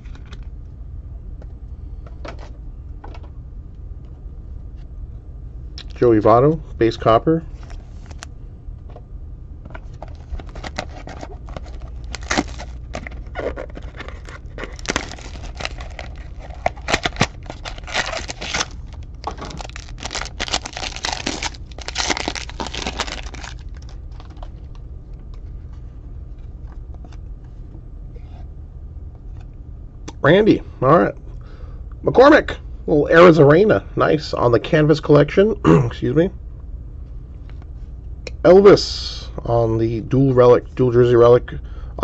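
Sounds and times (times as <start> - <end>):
steady low hum: 0.0 - 42.0
foil wrapper crinkling and tearing: 9.9 - 24.8.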